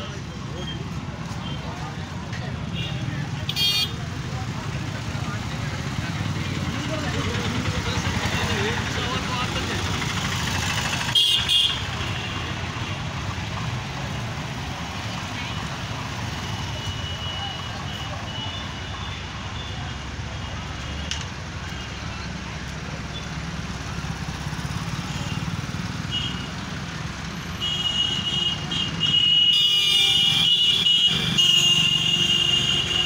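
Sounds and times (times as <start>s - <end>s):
crowd chatter: 0.0s - 27.6s
vehicle engines running: 0.0s - 33.0s
car horns honking: 2.7s - 4.0s, 11.0s - 12.9s, 27.4s - 33.0s.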